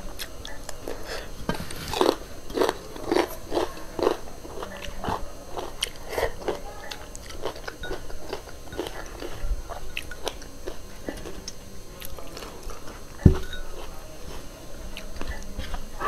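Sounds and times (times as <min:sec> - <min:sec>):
person chewing food: 0:00.2 - 0:16.0.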